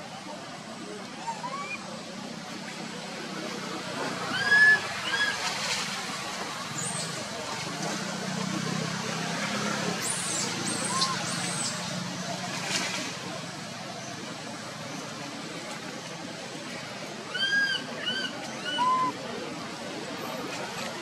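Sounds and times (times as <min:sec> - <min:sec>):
distant motor traffic hum: 0:00.0 - 0:21.0.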